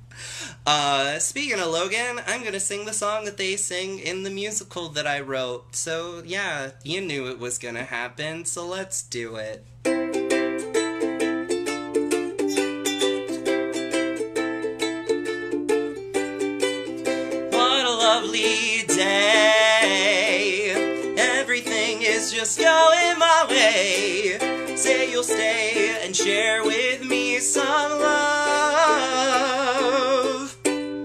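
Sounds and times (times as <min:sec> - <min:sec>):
ukulele strumming: 0:09.6 - 0:31.0
man singing with vibrato: 0:17.0 - 0:30.7.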